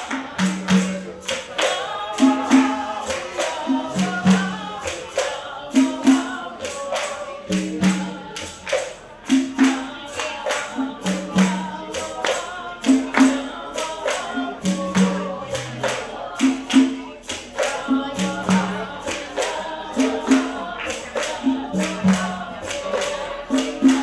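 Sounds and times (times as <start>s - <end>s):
maracas and rattles shaken: 0.0s - 24.0s
people singing: 0.0s - 24.0s.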